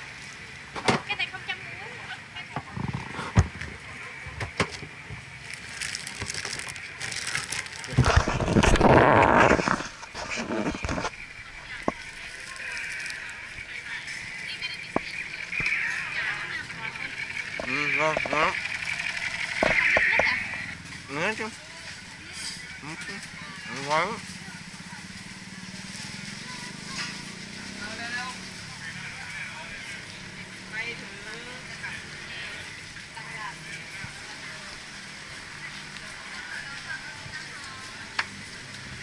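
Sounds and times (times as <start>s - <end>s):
hiss of street noise: 0.0s - 8.2s, 8.8s - 39.0s
people talking: 1.0s - 4.9s, 10.5s - 39.0s
plastic bag crinkling: 5.4s - 11.1s.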